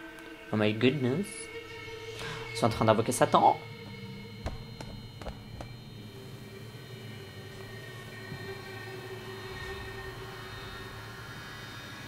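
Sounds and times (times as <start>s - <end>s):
faint steady drone: 0.0s - 12.0s.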